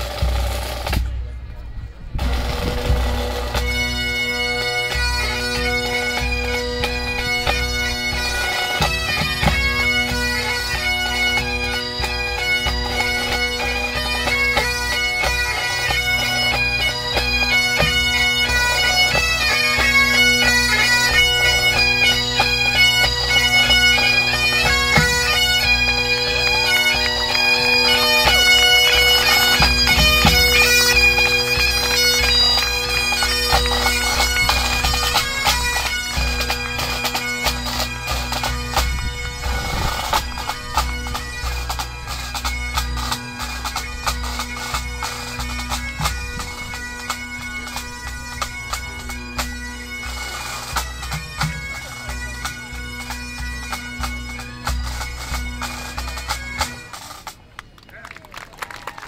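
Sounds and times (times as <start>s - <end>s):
bagpipes playing a reel: 2.2s - 57.8s.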